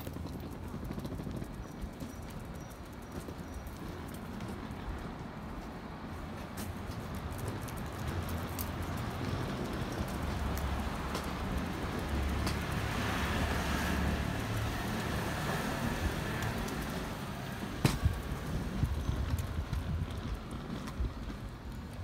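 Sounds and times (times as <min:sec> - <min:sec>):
low traffic rumble: 0:00.0 - 0:22.0.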